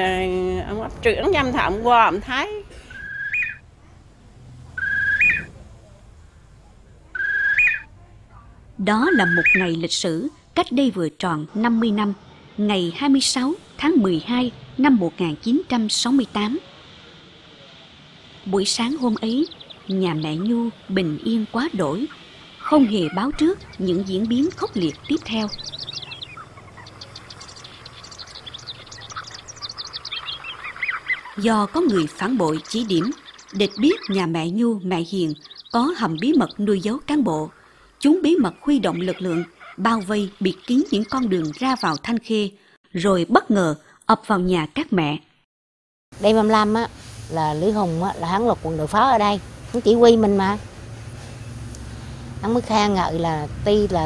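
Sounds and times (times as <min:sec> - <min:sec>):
small birds chirping: 0:00.0 - 0:04.0, 0:04.7 - 0:42.5, 0:46.2 - 0:54.0
bird whistled call: 0:02.9 - 0:03.6, 0:04.8 - 0:05.5, 0:07.1 - 0:07.9, 0:09.1 - 0:09.7, 0:22.0 - 0:34.2.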